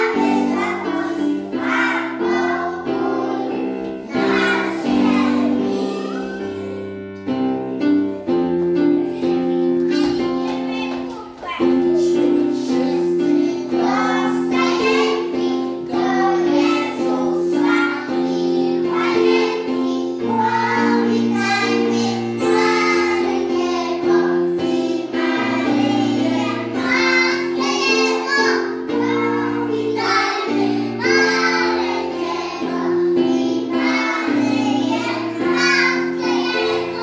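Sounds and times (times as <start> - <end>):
children singing together: 0.0 - 7.1, 11.6 - 37.0.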